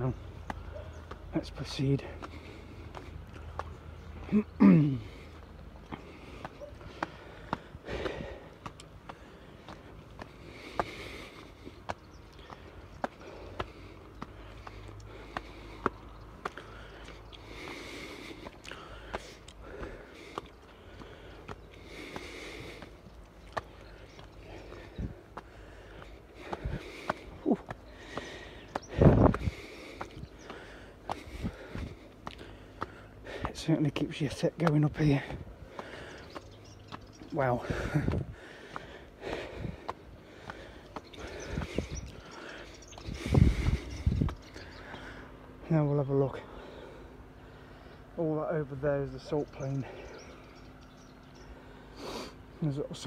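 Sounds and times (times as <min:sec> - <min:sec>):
footsteps on stone steps: 0:00.0 - 0:45.3
man breathing hard: 0:02.0 - 0:33.7, 0:35.1 - 0:45.6, 0:46.4 - 0:48.2, 0:49.8 - 0:52.6.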